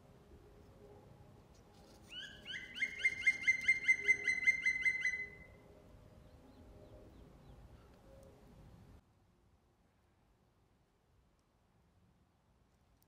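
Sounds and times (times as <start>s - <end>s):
songbird trilling: 2.1s - 5.5s.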